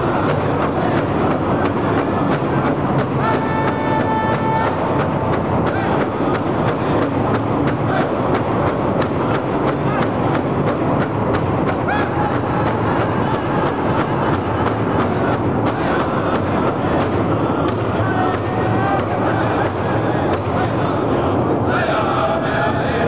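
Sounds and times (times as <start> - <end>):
men singing: 0.0 - 8.4, 11.6 - 23.0
large drum beating steadily: 0.0 - 22.4.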